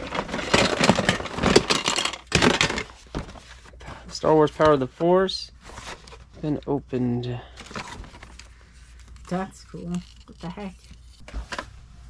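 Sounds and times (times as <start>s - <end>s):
plastic toy packaging rustling: 0.0s - 3.7s, 7.5s - 11.6s.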